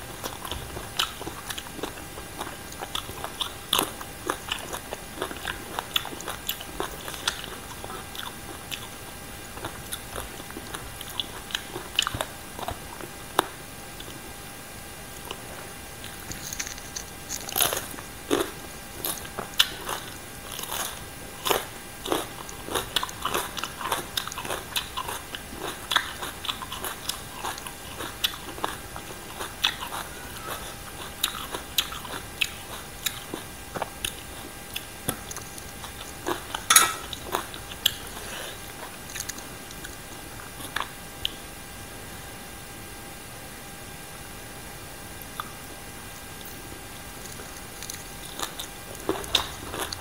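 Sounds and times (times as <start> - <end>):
crunchy chewing of vegetables: 0.0 - 43.0, 45.2 - 50.0.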